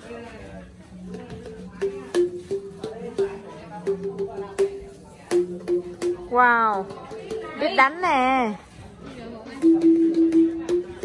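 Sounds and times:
bamboo xylophone notes: 0.9s - 8.4s, 9.5s - 11.0s.

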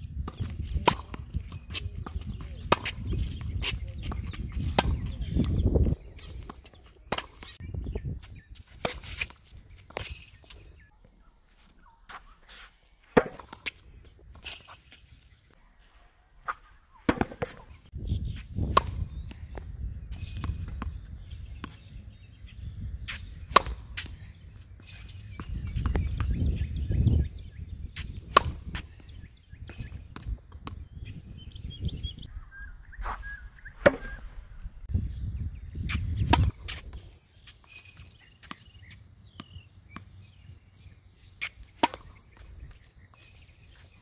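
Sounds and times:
wind rumble on microphone: 0.0s - 9.8s, 17.8s - 37.2s
racket striking tennis ball: 0.2s - 7.6s, 13.1s - 15.0s, 16.4s - 17.7s, 18.6s - 19.6s, 20.2s - 26.3s, 27.9s - 30.9s, 33.0s - 34.2s, 35.9s - 40.4s, 41.2s - 44.0s.

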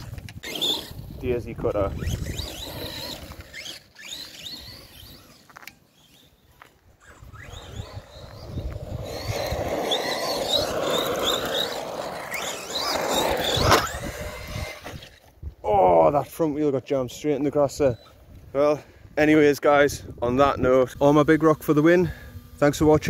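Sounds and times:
electric motor whining in bursts: 0.0s - 15.3s, 20.3s - 23.0s
wheels spinning on grass: 0.0s - 23.0s.

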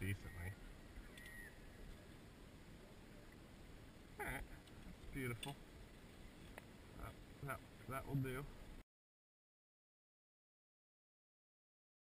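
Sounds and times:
faint outdoor noise: 0.0s - 8.8s
faint high whistle-like tone: 1.1s - 1.7s.

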